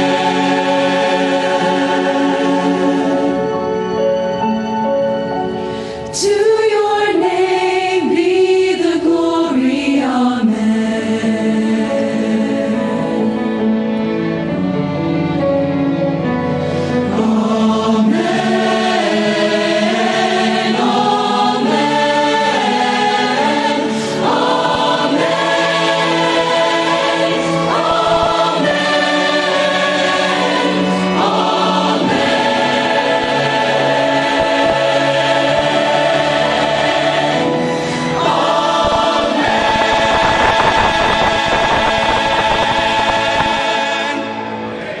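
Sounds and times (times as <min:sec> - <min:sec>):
choir singing worship song: 0:00.0 - 0:04.3, 0:05.7 - 0:15.4, 0:16.5 - 0:45.0.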